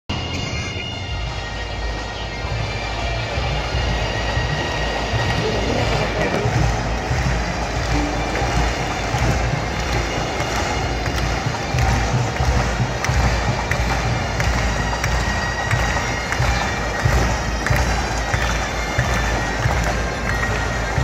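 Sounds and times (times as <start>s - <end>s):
live arena music with low rumble: 0.1s - 21.0s.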